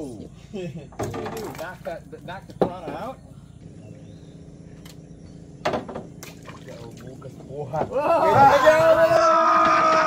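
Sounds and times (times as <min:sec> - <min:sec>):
water splashing and trickling: 0:00.6 - 0:03.2, 0:05.7 - 0:09.0.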